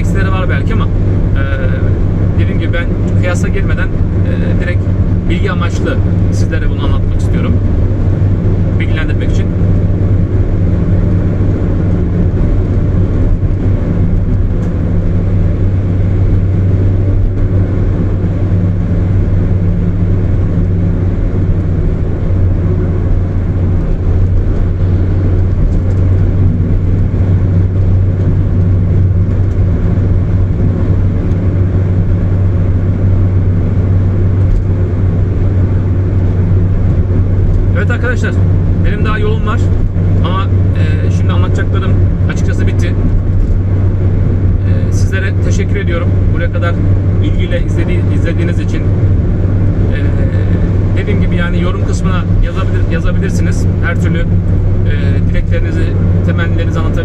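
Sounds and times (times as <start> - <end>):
car engine and tyre drone: 0.0 - 57.0.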